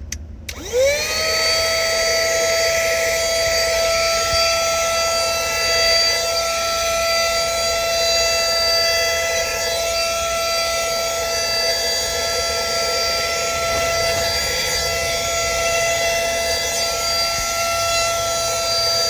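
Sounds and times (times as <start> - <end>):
handheld vacuum cleaner running: 0.5 - 19.0.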